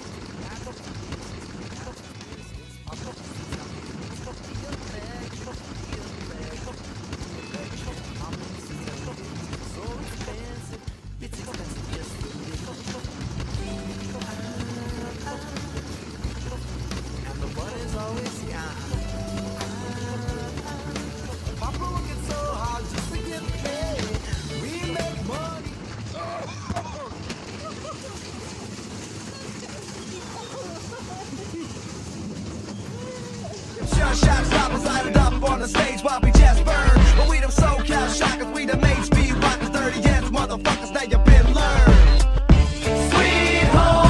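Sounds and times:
wooden roller coaster rushing on track: 0.0 - 44.0
background music: 7.8 - 25.9, 33.8 - 44.0.

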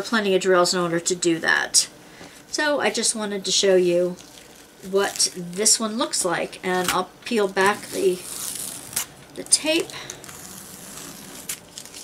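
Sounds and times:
tape crinkling and rustling: 4.0 - 6.0, 6.7 - 12.0
sharp tape crackle: 4.1 - 6.0, 6.7 - 12.0.

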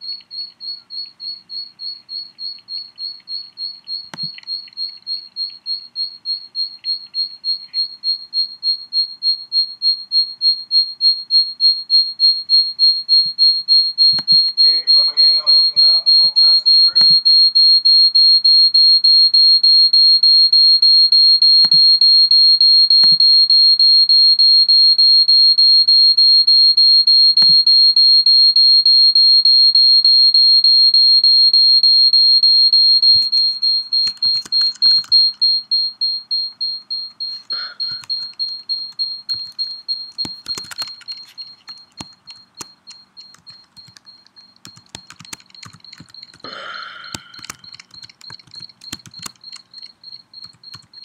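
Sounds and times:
pulsing audio feedback tone: 13.6 - 17.2.

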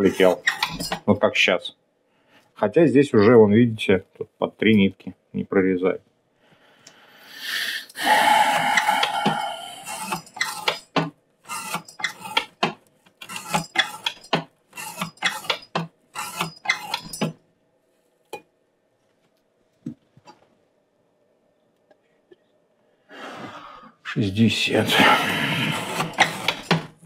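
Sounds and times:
knife sawing through rope: 24.9 - 26.7.

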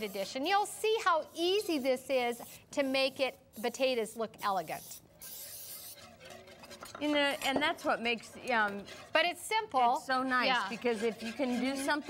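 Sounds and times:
cooking spray hissing: 0.0 - 6.1.

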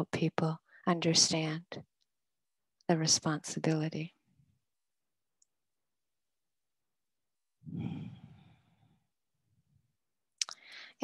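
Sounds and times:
soft breathy vocal sound: 7.6 - 9.1.

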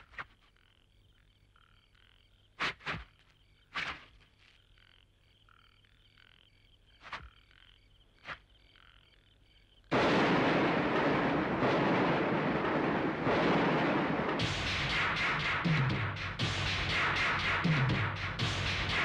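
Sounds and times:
frogs croaking: 0.0 - 19.0.

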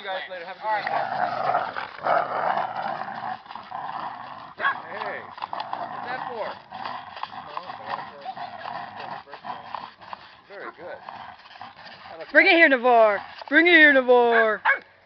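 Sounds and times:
dog vocal sounds: 0.6 - 14.8.

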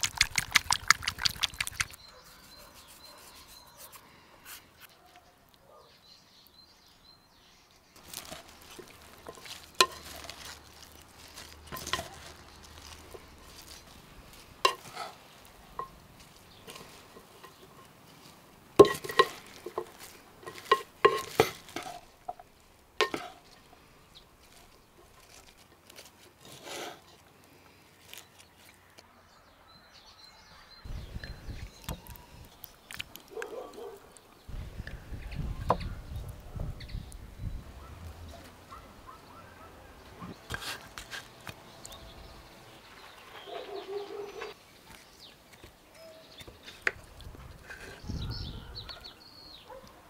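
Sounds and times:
wooden spoon tossing salad: 0.0 - 4.0, 8.0 - 26.7
utensils clinking on dishes: 8.0 - 13.8, 18.8 - 23.6.

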